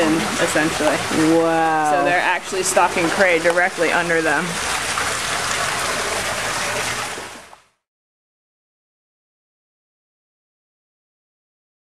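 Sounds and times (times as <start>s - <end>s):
outdoor background hiss: 0.0s - 7.6s.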